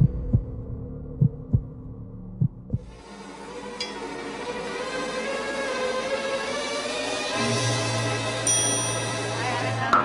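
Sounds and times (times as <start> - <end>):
low heartbeat-style thumps: 0.0 - 3.0
music: 0.0 - 10.0.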